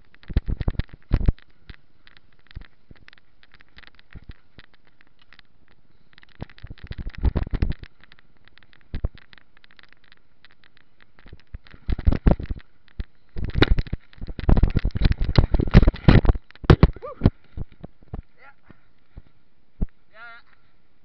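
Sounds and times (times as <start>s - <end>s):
mountain bike clattering: 0.0s - 20.0s.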